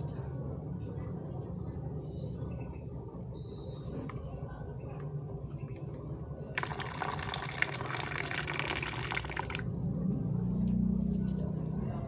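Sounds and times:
water pouring into basin: 6.6 - 9.7.

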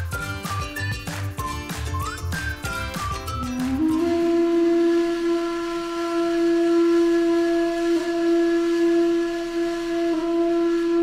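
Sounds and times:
breathy flute-like held note: 2.0 - 11.0.

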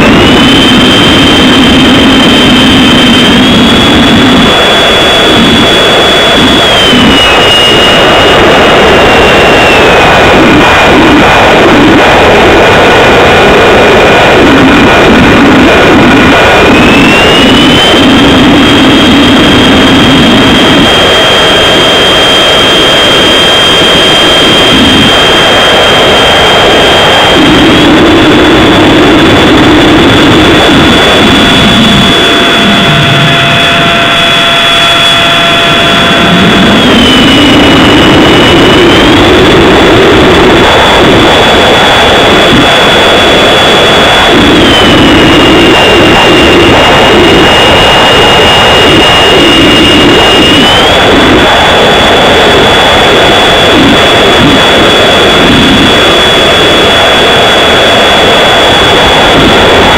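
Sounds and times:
low propeller drone: 0.0 - 59.9
model airplane motor whine: 0.0 - 59.9.

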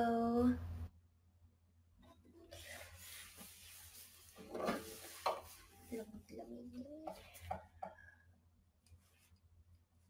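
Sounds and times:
rustling handling noise: 2.6 - 6.4.

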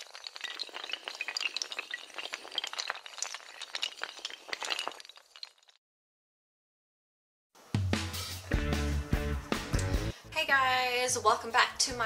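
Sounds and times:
dominoes toppling clatter: 0.0 - 5.8.

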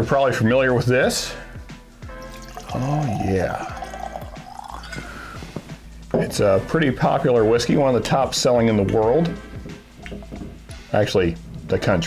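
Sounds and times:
soft background music: 0.0 - 12.0
liquid glugging into a glass: 2.2 - 5.4, 10.0 - 10.7.

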